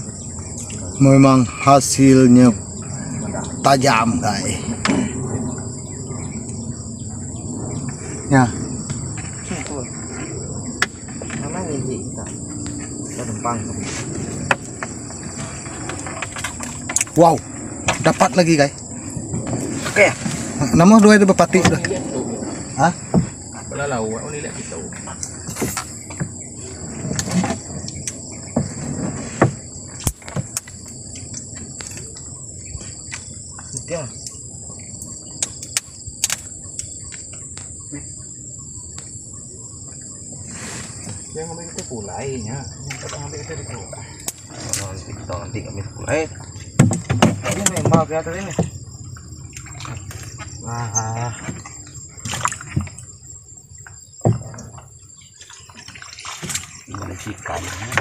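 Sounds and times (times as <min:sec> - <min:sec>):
high-pitched insect chorus: 0:00.0 - 0:58.0
knocks and rustles in wooden boat: 0:08.8 - 0:58.0.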